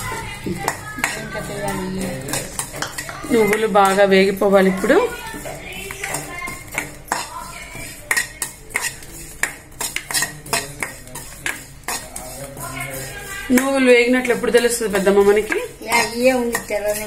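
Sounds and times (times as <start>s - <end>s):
ladle scraping metal pan: 0.0s - 17.0s.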